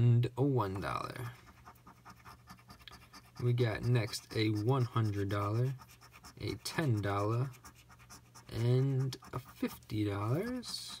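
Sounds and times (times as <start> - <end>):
coin scratching lottery ticket: 1.4 - 11.0.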